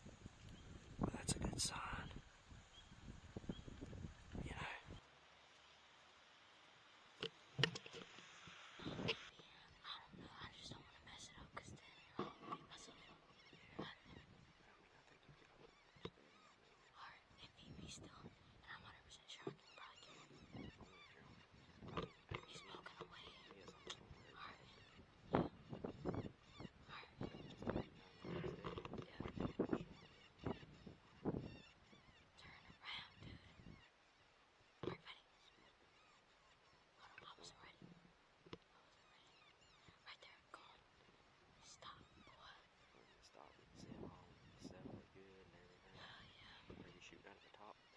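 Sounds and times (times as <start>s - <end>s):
faint whispering: 1.0s - 2.2s, 4.3s - 5.0s, 8.7s - 33.8s, 34.8s - 35.4s, 37.0s - 47.9s
high wavering animal calls: 7.6s - 38.0s, 38.8s - 40.2s, 40.9s - 47.9s.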